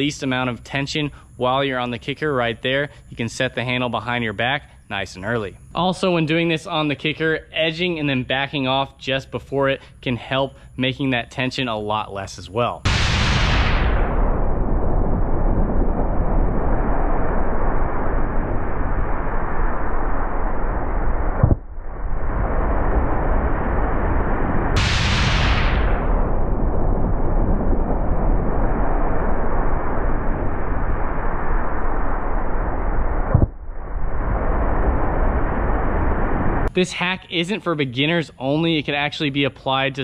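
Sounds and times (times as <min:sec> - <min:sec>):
wind buffeting microphone: 0:13.6 - 0:36.7.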